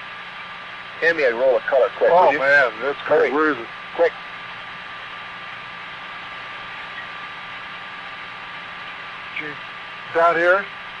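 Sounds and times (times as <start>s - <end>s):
thin steady tone: 1.3s - 3.4s.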